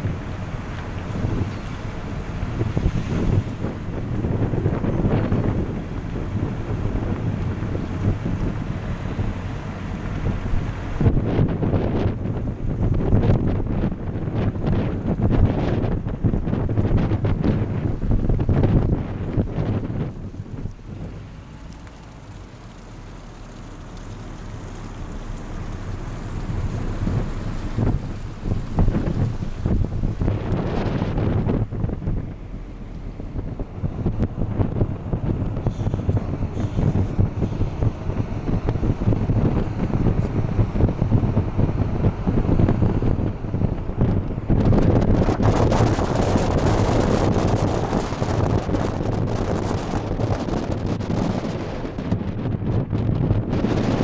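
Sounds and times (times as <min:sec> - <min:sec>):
car road noise: 0:00.0 - 0:54.0
wind buffeting microphone: 0:00.0 - 0:54.0.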